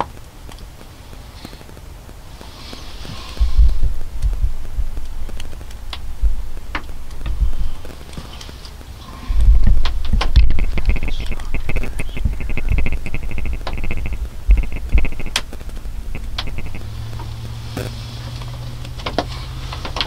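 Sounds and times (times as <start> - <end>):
rapid high ticks: 0.0 - 20.0.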